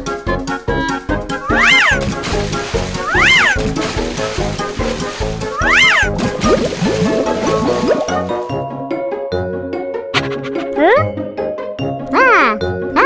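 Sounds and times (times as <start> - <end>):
cartoon background music: 0.0 - 13.0.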